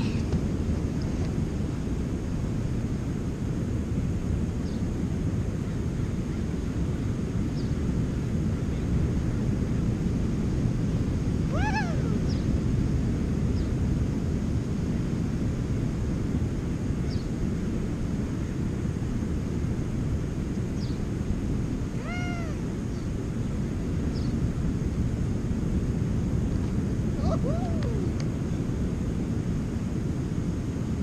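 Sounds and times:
wind: 0.0s - 31.0s
high rising and falling call: 11.5s - 12.4s, 22.0s - 22.6s.

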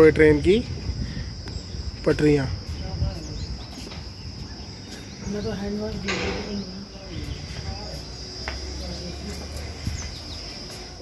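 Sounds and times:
insects buzzing: 0.0s - 11.0s.

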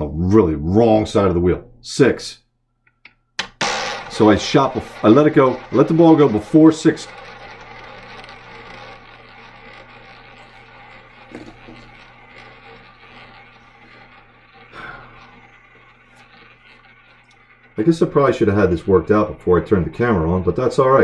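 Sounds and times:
roulette ball rolling: 3.4s - 20.8s.

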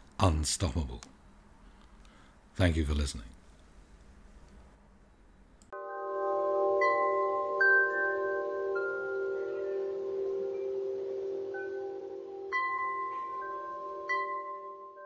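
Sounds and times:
bell-like chimes: 5.8s - 15.0s
held chord: 5.8s - 15.0s.

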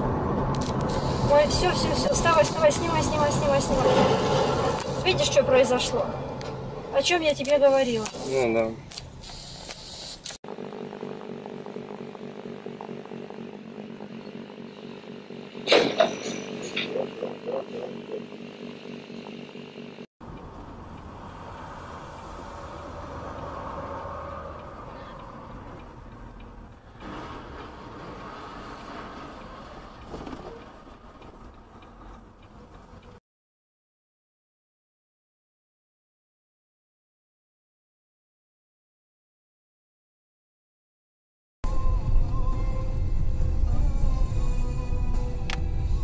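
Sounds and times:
engine drone inside vehicle: 0.0s - 33.2s, 41.7s - 46.0s
road noise: 0.0s - 33.2s, 41.7s - 46.0s.

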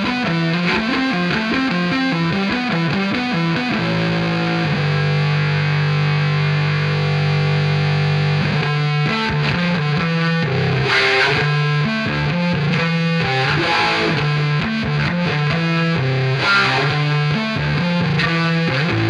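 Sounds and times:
distorted electric bass guitar: 0.0s - 19.0s.

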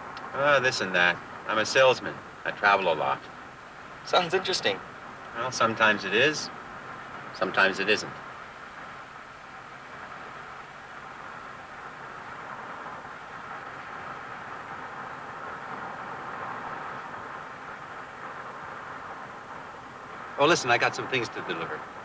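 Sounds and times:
car road and engine noise: 0.0s - 22.0s.

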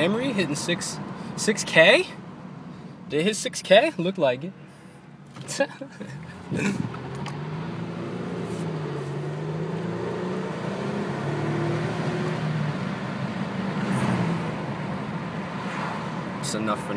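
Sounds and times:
car engine humming: 0.0s - 16.9s
tyre and road noise: 4.2s - 16.9s.

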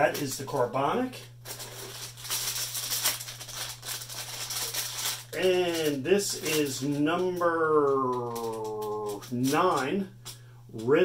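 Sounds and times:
low electrical hum: 0.0s - 11.0s
foil packets crinkling: 1.4s - 10.4s.

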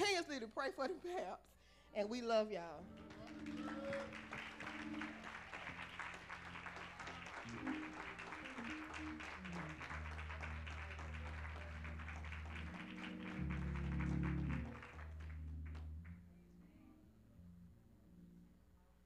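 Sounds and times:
congregation applauding: 2.8s - 16.2s
keyboard playing low chords: 2.8s - 18.8s.

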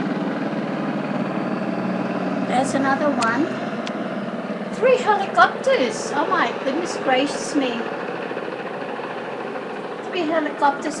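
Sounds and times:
steady mechanical drone: 0.0s - 11.0s.

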